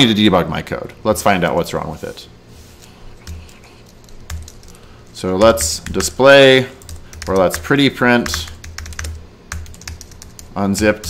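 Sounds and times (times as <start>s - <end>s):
computer keyboard keystrokes: 3.2s - 4.8s, 5.4s - 6.2s, 6.8s - 10.6s.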